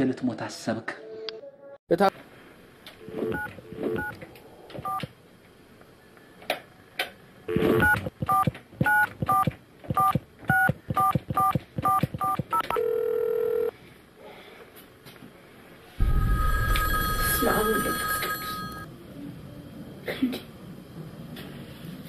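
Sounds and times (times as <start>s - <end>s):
telephone keypad beeps: 3.3s - 4.1s, 4.8s - 5.1s, 7.8s - 13.7s
steady telephone tone: 11.9s - 13.7s, 16.0s - 18.9s.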